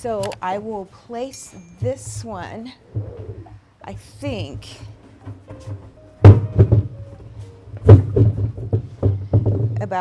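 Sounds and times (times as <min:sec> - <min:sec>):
vase thunking on tile floor: 0:05.2 - 0:10.0.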